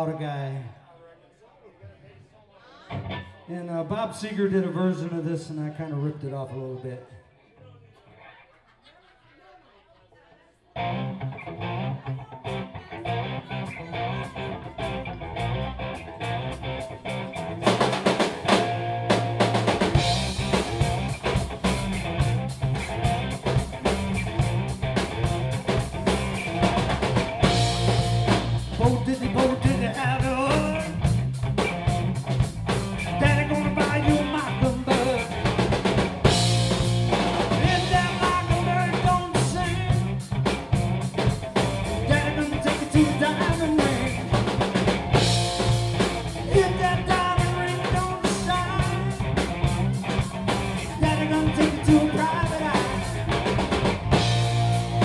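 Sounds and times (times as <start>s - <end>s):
electric guitar: 2.9s - 3.5s, 10.8s - 55.0s
bass guitar: 2.9s - 5.4s, 10.7s - 55.0s
person singing: 11.8s - 15.2s, 28.7s - 31.1s, 33.1s - 35.5s, 37.5s - 40.2s, 41.9s - 44.5s, 46.2s - 53.5s
drum kit: 14.2s - 55.0s.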